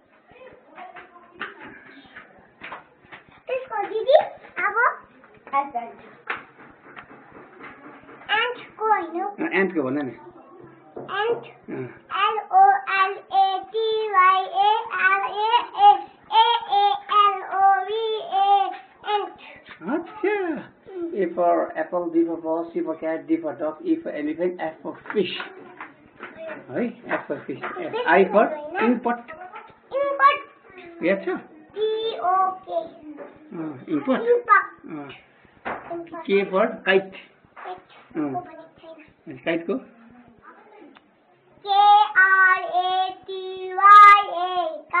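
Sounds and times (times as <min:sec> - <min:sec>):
young child singing: 0:12.1 - 0:19.4, 0:31.8 - 0:33.2, 0:41.6 - 0:45.0.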